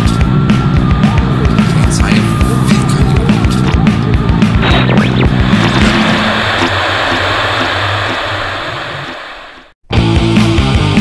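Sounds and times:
distorted electric guitars: 0.0 - 11.0
full band hit: 4.3 - 9.4
crashing cymbals: 4.9 - 9.8.

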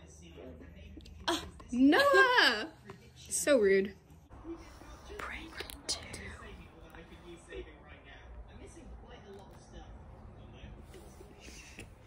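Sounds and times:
person whispering: 4.5 - 6.9.

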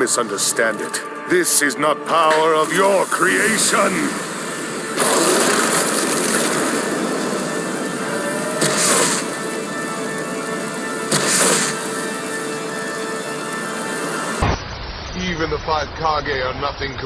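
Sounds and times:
dramatic background music: 0.0 - 14.8.

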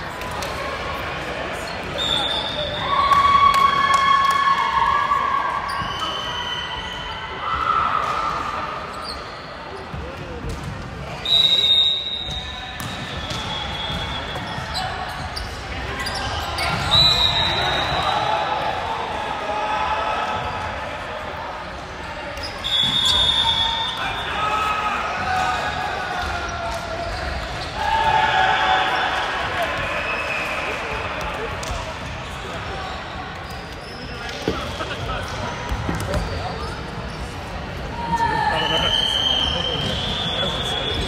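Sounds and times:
sneakers squeaking on court: 12.1 - 17.3, 31.6 - 37.6.

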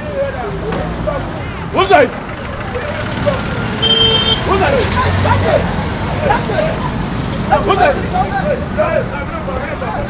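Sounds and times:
road traffic rumbling: 0.0 - 10.0
vehicle horn toot: 3.8 - 4.5.

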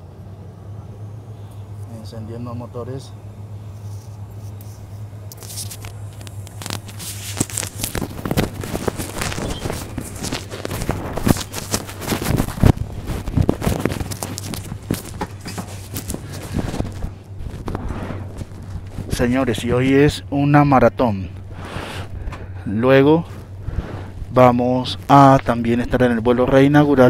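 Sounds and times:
steady low hum: 0.0 - 27.0
turboprop engine rushing and crackling: 0.0 - 27.0.

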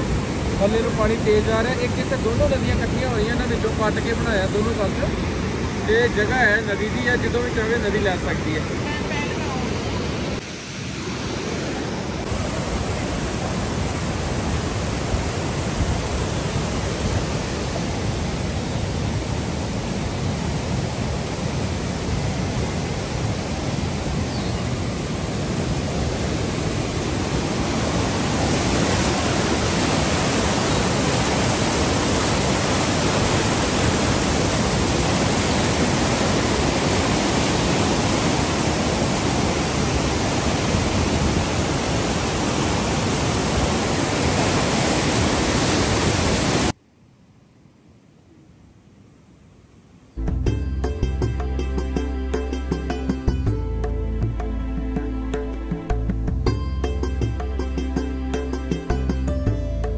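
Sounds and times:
river rapids rushing over rocks: 24.8 - 46.7.

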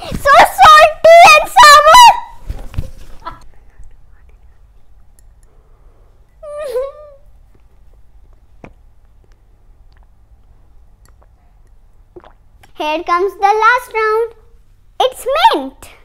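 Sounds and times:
child shrieking with laughter: 1.6 - 2.4.

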